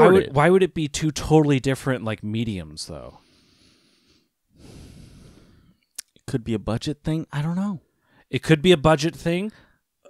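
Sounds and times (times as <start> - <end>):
man breathing into microphone: 3.2 - 5.8.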